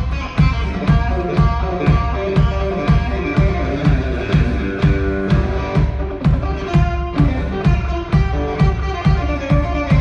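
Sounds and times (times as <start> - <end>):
amplified cigar box guitar blues: 0.0 - 10.0.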